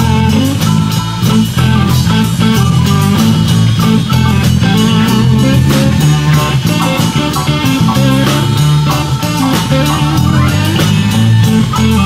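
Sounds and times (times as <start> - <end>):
blues-rock band playing: 0.0 - 12.0.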